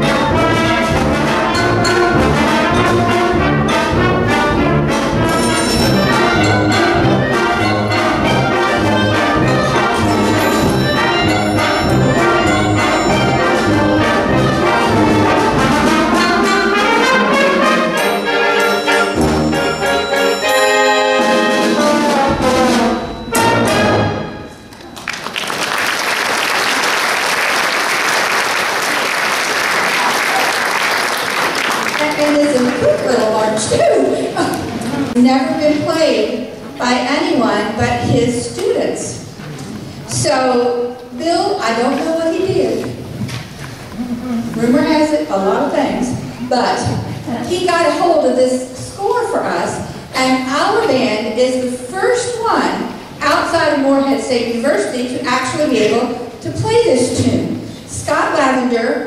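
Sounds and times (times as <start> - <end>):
concert band playing: 0.0 - 25.6
audience applauding: 24.7 - 32.8.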